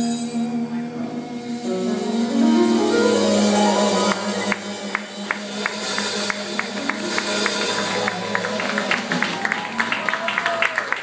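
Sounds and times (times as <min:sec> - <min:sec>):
jazz band playing: 0:00.0 - 0:11.0
audience applause: 0:03.0 - 0:11.0.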